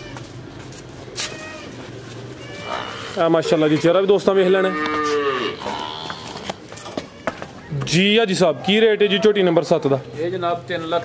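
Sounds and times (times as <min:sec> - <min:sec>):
water buffalo lowing: 0:01.4 - 0:03.6.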